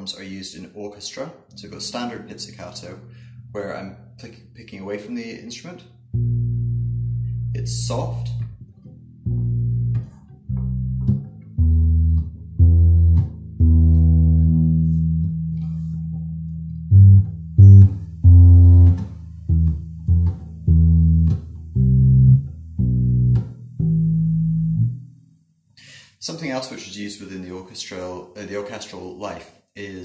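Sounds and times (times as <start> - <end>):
plucked electric upright bass: 1.5 - 25.2.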